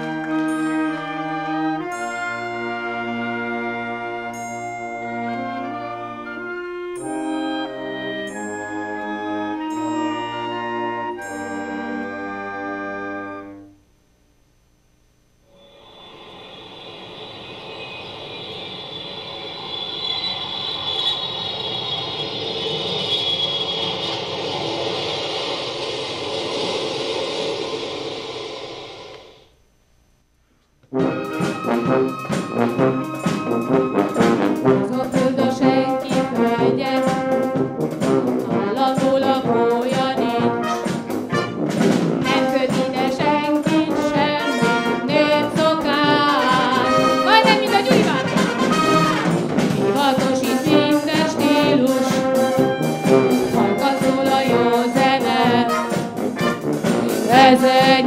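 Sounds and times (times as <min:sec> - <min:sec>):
wind band playing pop tune: 0:00.0 - 0:13.7, 0:30.9 - 0:58.0
long wash of sound: 0:15.5 - 0:29.6.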